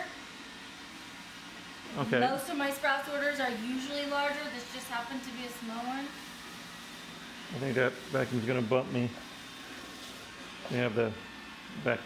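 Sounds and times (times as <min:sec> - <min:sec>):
robot vacuum motor whirring: 0:00.0 - 0:12.0.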